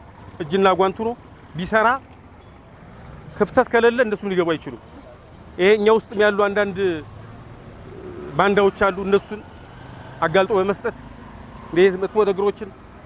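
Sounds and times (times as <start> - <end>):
street traffic: 0.0 - 13.0
man speaking: 8.0 - 9.4.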